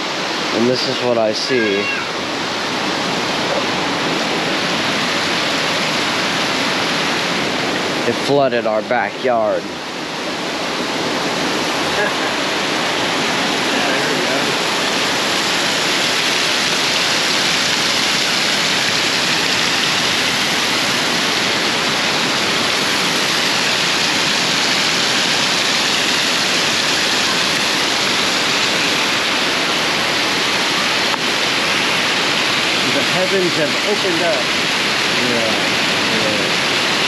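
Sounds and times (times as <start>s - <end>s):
heavy rain pouring: 0.0s - 37.0s.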